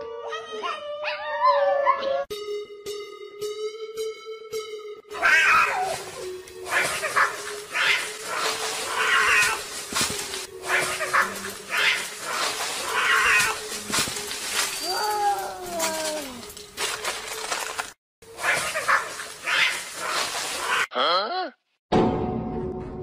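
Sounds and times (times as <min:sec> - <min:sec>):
background music: 0:00.0 - 0:19.3
cat yowling: 0:05.1 - 0:09.6, 0:10.7 - 0:13.6.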